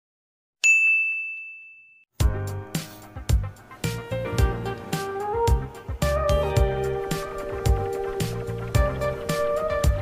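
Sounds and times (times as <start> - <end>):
notification bell ding: 0.6 - 2.1
guitar music: 2.2 - 10.0.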